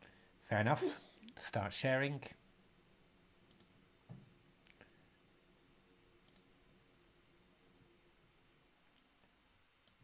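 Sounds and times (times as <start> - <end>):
faint computer mouse clicks: 3.5 - 3.7, 6.2 - 6.5.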